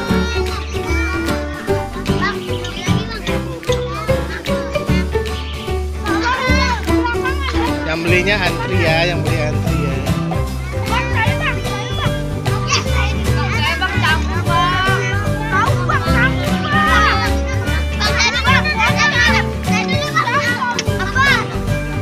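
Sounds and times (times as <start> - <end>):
background music: 0.0 - 22.0
children chattering and calling out: 0.0 - 22.0.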